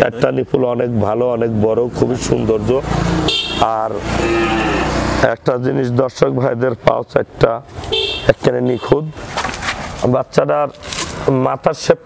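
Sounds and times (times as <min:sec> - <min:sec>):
men talking: 0:00.0 - 0:09.3, 0:09.9 - 0:12.0
motor vehicle noise: 0:00.0 - 0:11.8.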